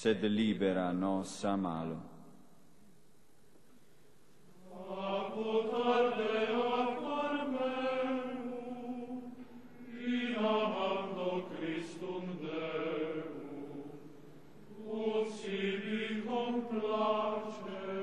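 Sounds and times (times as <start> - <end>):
sung liturgical chant: 4.5 - 18.0.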